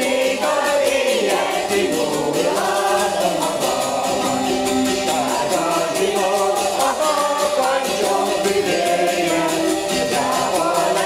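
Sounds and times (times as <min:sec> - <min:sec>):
choir singing in unison: 0:00.0 - 0:11.0.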